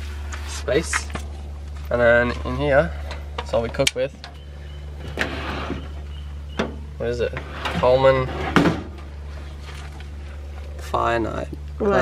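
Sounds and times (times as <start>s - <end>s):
steady low hum: 0.0s - 12.0s
metal stove scraping on wood: 5.0s - 6.0s, 7.4s - 8.7s.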